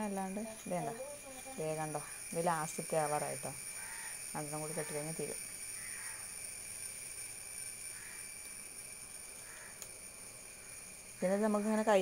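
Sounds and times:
steady hiss: 0.0 - 12.0
thin high steady tones: 0.0 - 12.0.

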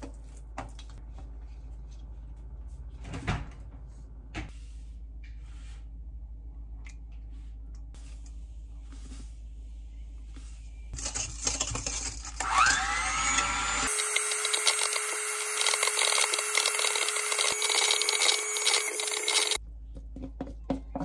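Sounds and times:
electric hand mixer whining: 12.4 - 19.6.

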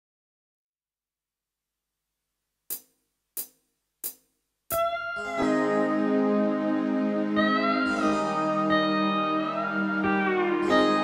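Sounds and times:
arranger keyboard music: 4.7 - 11.0.

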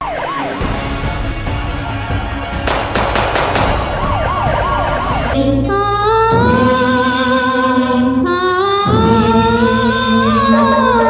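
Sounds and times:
rapid sharp hits: 2.7 - 5.4.

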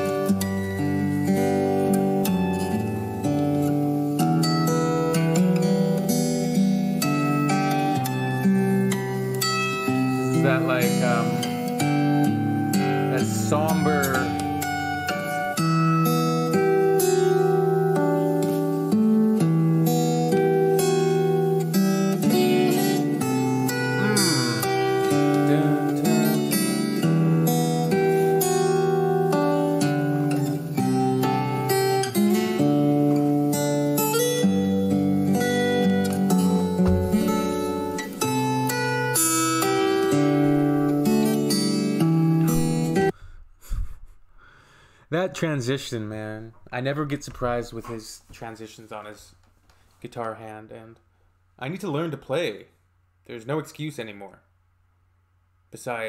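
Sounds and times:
fingerstyle acoustic guitar: 0.0 - 44.2.

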